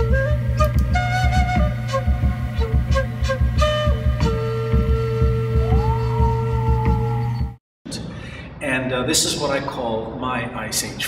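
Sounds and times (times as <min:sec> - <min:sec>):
flute melody: 0:00.0 - 0:07.6
regular beat: 0:00.0 - 0:07.6.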